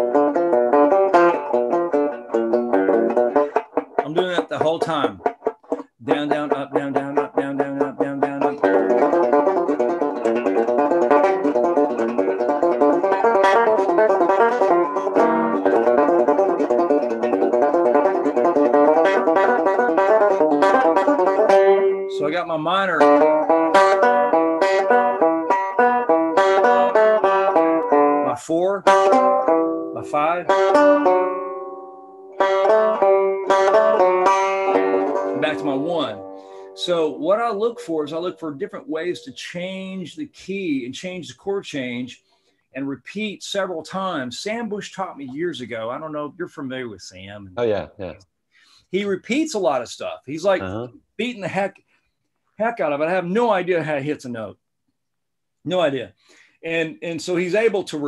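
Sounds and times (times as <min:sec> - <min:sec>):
banjo flatpicked slowly: 0:00.0 - 0:42.1.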